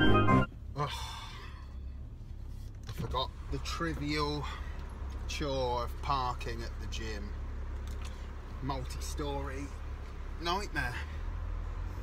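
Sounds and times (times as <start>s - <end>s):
man sighing: 0.8s - 1.7s.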